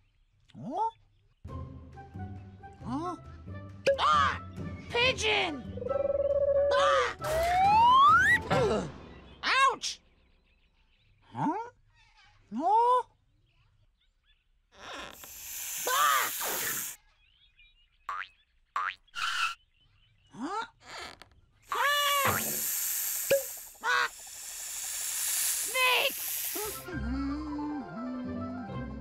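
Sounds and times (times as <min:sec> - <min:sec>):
music: 0:01.4 - 0:09.5, 0:26.8 - 0:29.0
long hissing: 0:14.8 - 0:17.0, 0:21.7 - 0:26.9
cartoon parrot squawks: 0:15.6 - 0:17.0, 0:21.7 - 0:22.7, 0:25.6 - 0:26.8.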